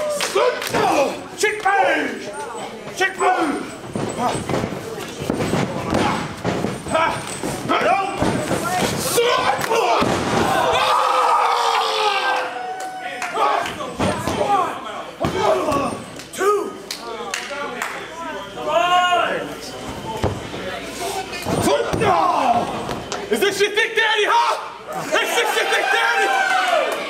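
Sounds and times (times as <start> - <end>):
people shouting: 0.0 - 2.2, 5.9 - 16.8, 21.6 - 22.8, 24.2 - 27.0
bodies thudding on ring canvas: 3.8 - 9.2.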